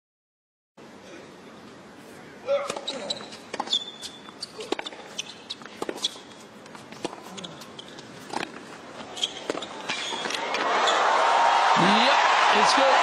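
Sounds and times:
racket striking tennis ball: 2.6s - 7.2s
shoe squeaks: 2.6s - 11.0s
crowd cheering: 10.2s - 13.0s.

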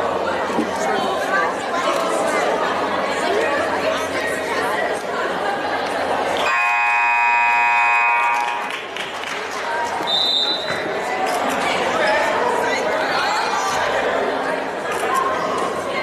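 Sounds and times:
spectator chatter: 0.0s - 16.0s
scoreboard buzzer: 6.4s - 8.8s.

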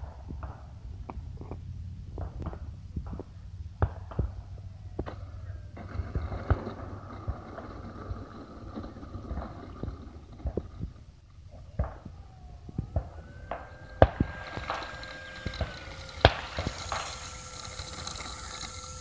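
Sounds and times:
model plane motor whine: 4.3s - 19.0s.

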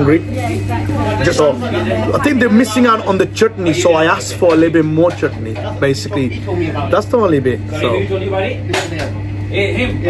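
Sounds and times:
people talking: 0.0s - 10.0s
steady low hum: 0.0s - 10.0s.

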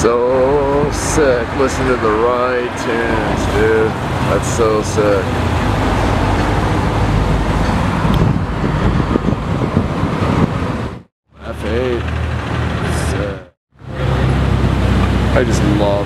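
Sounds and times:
person speaking: 0.0s - 5.5s
car engine and road noise rumble: 0.0s - 16.0s.

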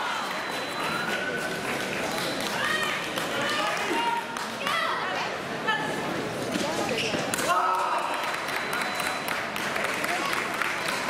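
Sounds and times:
chatter echoing in a hall: 0.0s - 11.0s.

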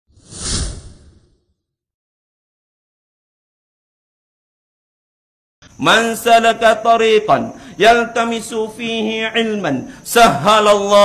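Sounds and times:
whoosh sound effect: 0.1s - 1.5s.

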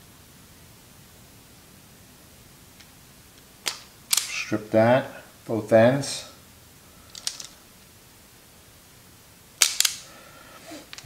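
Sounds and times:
wire stripper snaps: 3.6s - 4.5s, 9.6s - 10.1s
wire stripper clicking: 9.6s - 10.0s.

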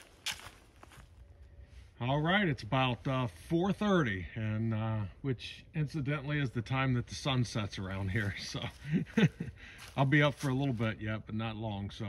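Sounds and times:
footsteps on dry leaves: 0.0s - 1.3s, 7.8s - 11.0s.

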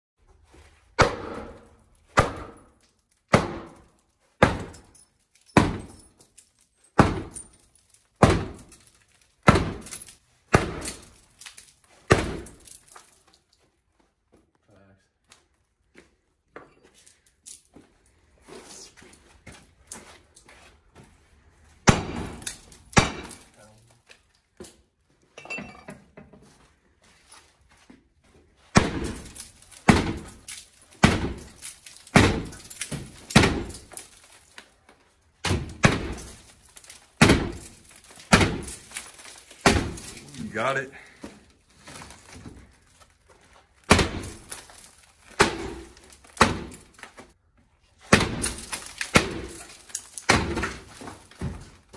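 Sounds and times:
glass cracking: 4.6s - 13.4s, 21.9s - 23.8s, 28.8s - 41.0s, 41.8s - 47.2s, 48.1s - 51.8s
sledgehammer thudding on glass door: 5.6s - 6.0s, 7.0s - 7.4s, 8.2s - 8.7s, 9.4s - 11.1s, 12.1s - 12.6s, 21.8s - 23.5s, 28.7s - 33.9s, 35.4s - 36.4s, 37.2s - 38.9s, 39.6s - 40.2s, 43.9s - 44.6s, 45.3s - 46.9s, 48.1s - 51.8s.

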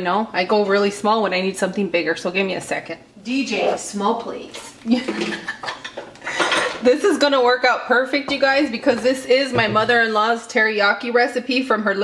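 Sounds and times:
glassware clinking on countertop: 5.1s - 6.8s.

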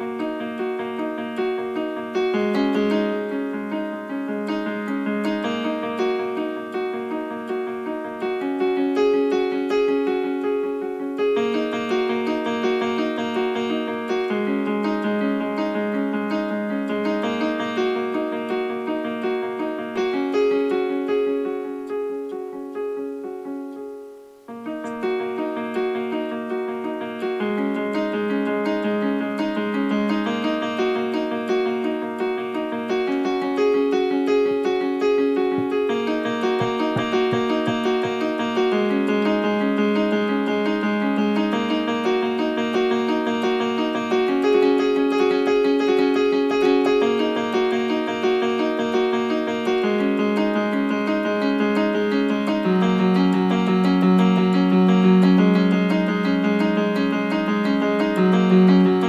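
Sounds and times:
piano broken chords: 30.3s - 39.8s, 41.6s - 59.0s.

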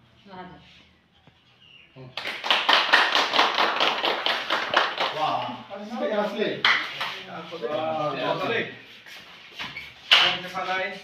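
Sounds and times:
people clapping: 2.1s - 5.7s, 6.6s - 7.2s, 10.1s - 10.4s.

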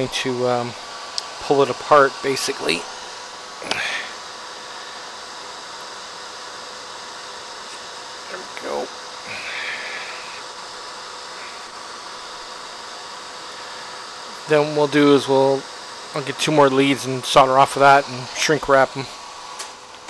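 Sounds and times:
faint hum: 0.0s - 20.0s
whirring hiss: 0.0s - 20.0s
murmured voice: 3.6s - 4.1s.

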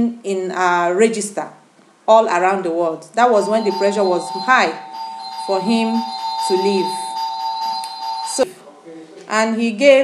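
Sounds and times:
electronic ringing tone: 3.3s - 8.5s.

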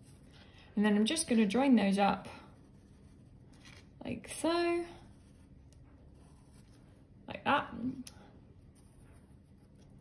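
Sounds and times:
pencil scratching on paper: 2.2s - 3.7s, 4.8s - 7.0s, 8.6s - 10.0s.

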